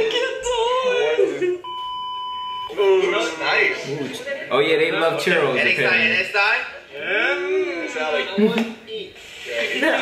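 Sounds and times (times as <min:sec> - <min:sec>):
steady electronic beep: 0:01.6 - 0:03.7.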